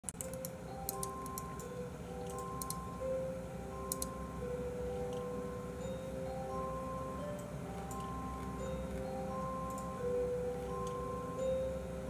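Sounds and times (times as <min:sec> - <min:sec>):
light computer clicks: 0:00.1 - 0:02.8, 0:03.9 - 0:04.2, 0:07.4 - 0:09.0, 0:09.6 - 0:10.0
gentle background music: 0:00.1 - 0:12.0.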